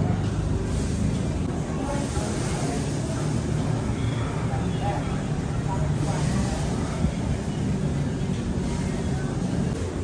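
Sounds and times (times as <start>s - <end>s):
background chatter of voices: 0.0s - 10.0s.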